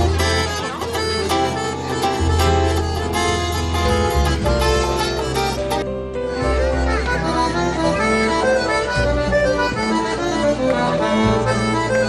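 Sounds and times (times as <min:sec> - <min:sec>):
folk dance tune: 0:00.0 - 0:12.0.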